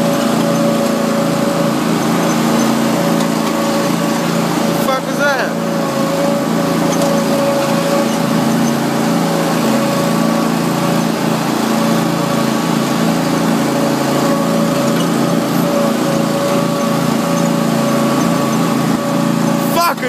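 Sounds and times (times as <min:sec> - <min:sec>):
riding mower engine drone: 0:00.0 - 0:20.0.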